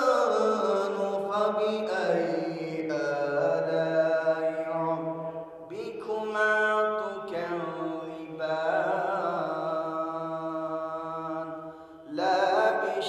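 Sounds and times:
man chanting: 0.0s - 13.0s.

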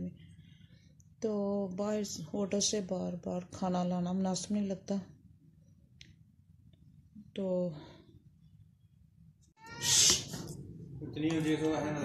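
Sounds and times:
high-pitched cry: 9.6s - 10.4s.

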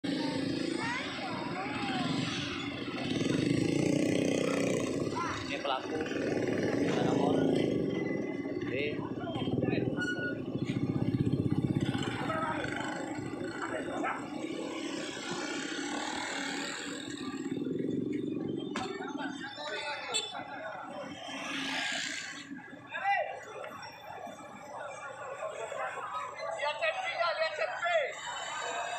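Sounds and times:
motorcycle engine running: 0.0s - 19.3s
crowd voices: 0.0s - 28.9s.

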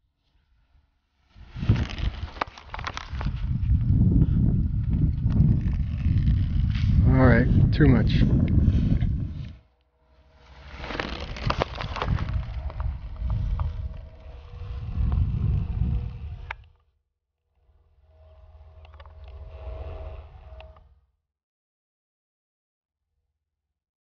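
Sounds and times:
wind buffeting microphone: 1.4s - 9.7s, 11.2s - 16.8s.

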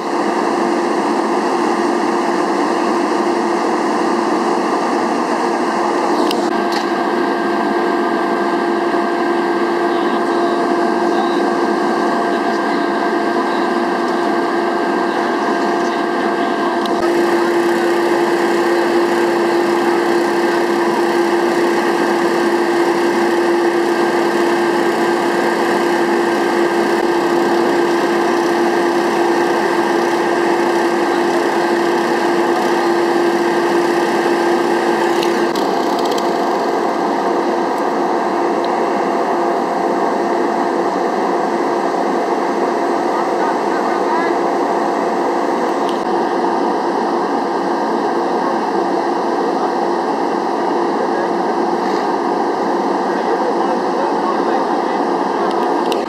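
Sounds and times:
small engine running: 0.0s - 39.4s.

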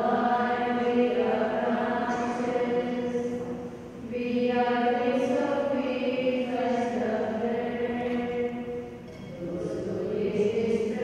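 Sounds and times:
slow hymn singing: 0.0s - 11.0s.

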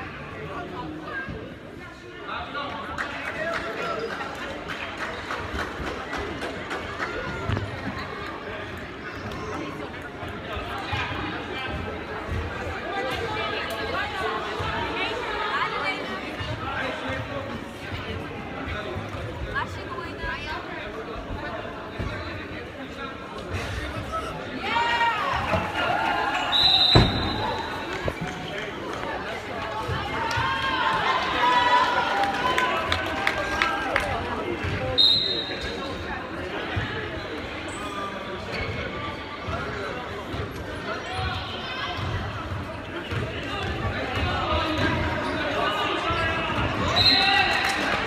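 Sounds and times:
overlapping chatter of voices: 0.0s - 48.0s
referee's whistle: 26.5s - 27.9s, 34.9s - 35.9s, 46.8s - 47.5s.

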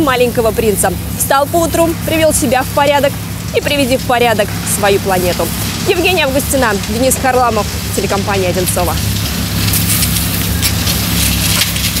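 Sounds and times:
steady low hum: 0.0s - 12.0s
rake scraping dry leaves: 9.2s - 12.0s.

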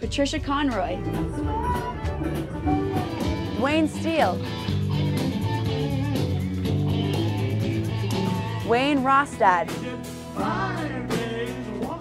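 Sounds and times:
live band playing: 0.0s - 12.0s
fiddle melody notes: 0.7s - 7.0s.

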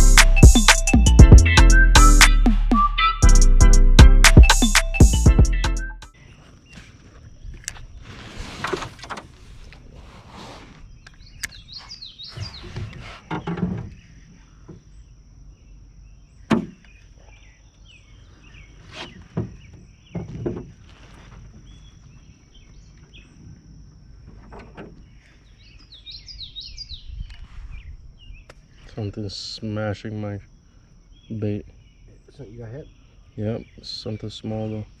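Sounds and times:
songbirds chirping: 0.0s - 35.0s
high insect drone: 6.1s - 35.0s.

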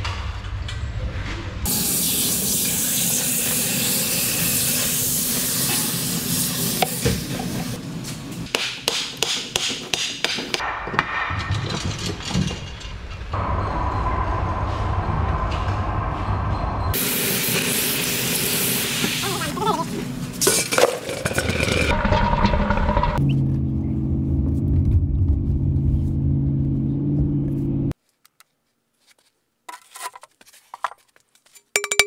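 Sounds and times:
hot metal sizzling in water: 1.7s - 6.9s
knocks and clatter of mould: 9.6s - 13.1s.

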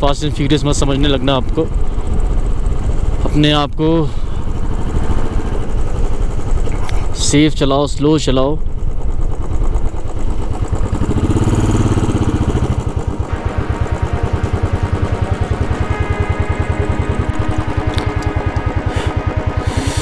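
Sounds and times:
motorcycle engine running: 0.0s - 20.0s
background music: 11.0s - 20.0s.

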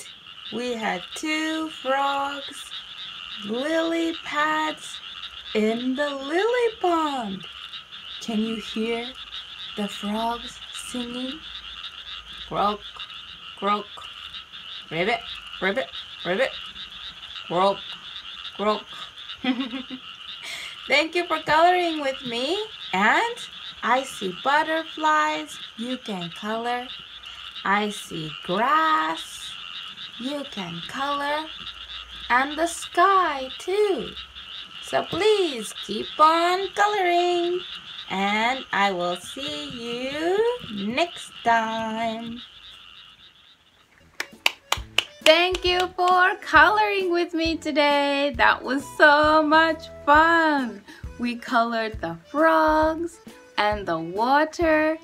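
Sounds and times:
frogs croaking: 0.0s - 55.0s
person laughing: 19.4s - 20.8s
quick hand claps: 44.2s - 46.3s.

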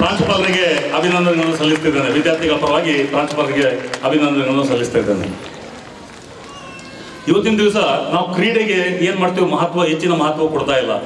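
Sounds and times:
man speaking over public address: 0.0s - 5.4s, 7.2s - 11.0s
crowd murmur: 5.2s - 7.5s.

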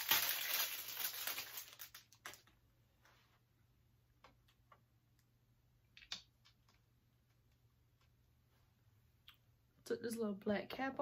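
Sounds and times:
wrapping crinkling: 0.0s - 2.6s.

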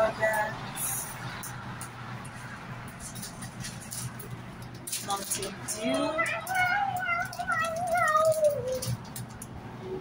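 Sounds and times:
child's sing-song call: 5.8s - 9.2s.

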